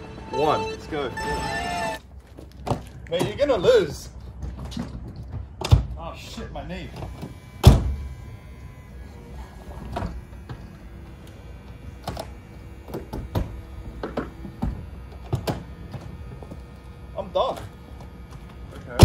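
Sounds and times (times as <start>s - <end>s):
faint hum of folding roof motor: 6.8s - 19.0s.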